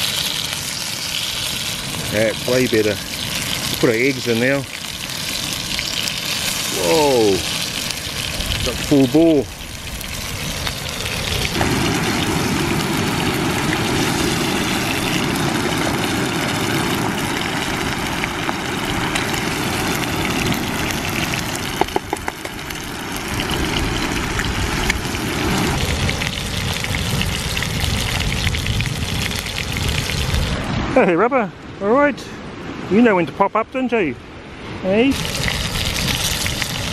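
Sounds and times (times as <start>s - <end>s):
food sizzling in a pan: 0.0s - 30.6s, 35.1s - 36.9s
rushing stove fire: 0.0s - 30.7s, 35.1s - 36.9s.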